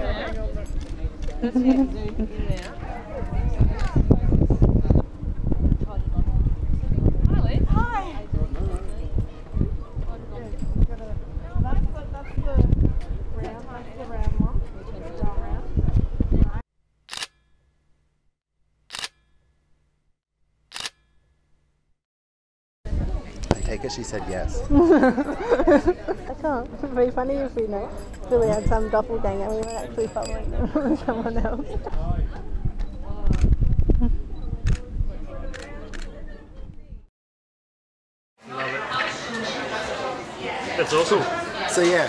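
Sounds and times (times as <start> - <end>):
camera shutter clicks: 17.1 - 17.4, 18.9 - 19.2, 20.7 - 21.0.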